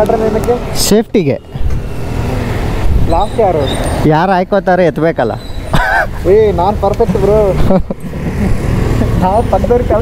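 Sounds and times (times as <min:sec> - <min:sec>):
vehicle engines rumbling: 0:00.0 - 0:10.0
people talking: 0:03.1 - 0:05.4, 0:06.2 - 0:07.8, 0:09.0 - 0:10.0.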